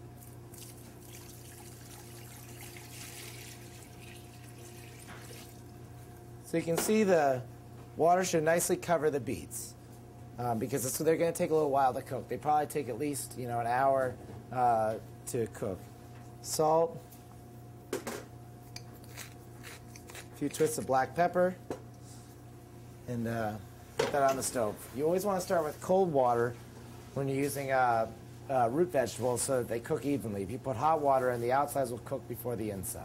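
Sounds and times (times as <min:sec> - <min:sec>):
kitchen equipment humming: 0:00.0 - 0:09.8
water pouring into metal pot: 0:00.6 - 0:05.7.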